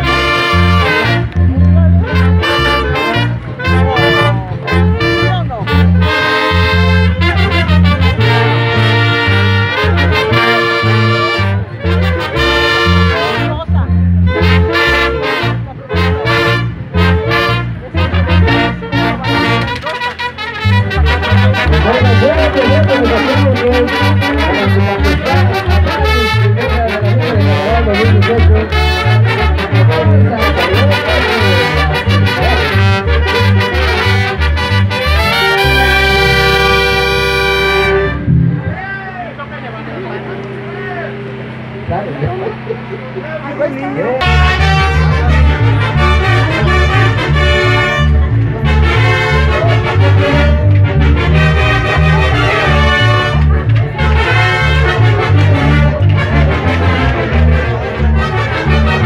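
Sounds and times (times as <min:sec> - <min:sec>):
brass band music: 0:00.0 - 0:59.0
crowd voices: 0:00.0 - 0:59.0.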